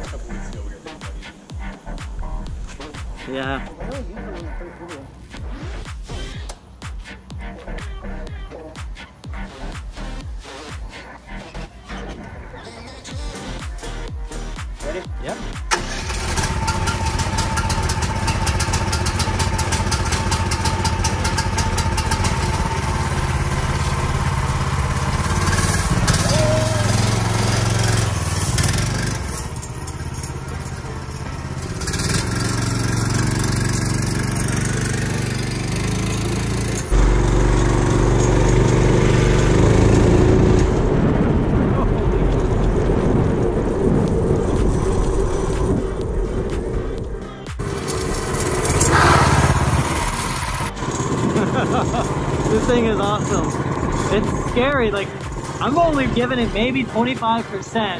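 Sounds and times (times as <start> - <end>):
kart engine running: 15.7 - 46.9, 47.6 - 57.4.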